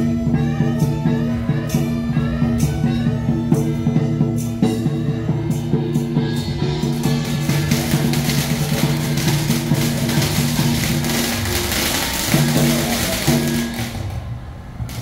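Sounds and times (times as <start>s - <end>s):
traditional instrumental ensemble melody: 0.0s - 15.0s.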